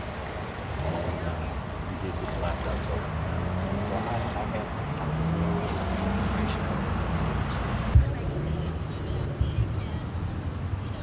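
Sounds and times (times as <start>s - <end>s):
faint indistinct voices: 0.0s - 11.0s
traffic rumble: 0.0s - 11.0s.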